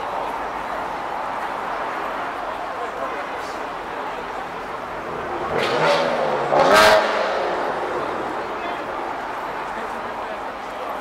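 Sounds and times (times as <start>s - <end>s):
vehicle engine revving: 5.0s - 8.6s.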